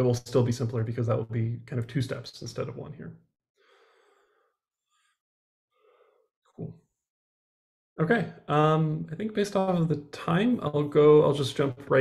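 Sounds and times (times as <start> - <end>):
man speaking: 0.0 - 3.2, 8.0 - 12.0
breath into microphone: 3.6 - 6.3.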